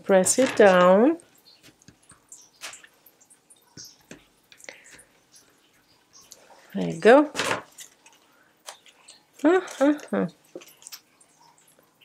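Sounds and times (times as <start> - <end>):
acetate sheet clicks and rustles: 0.2 - 6.4, 7.3 - 11.8.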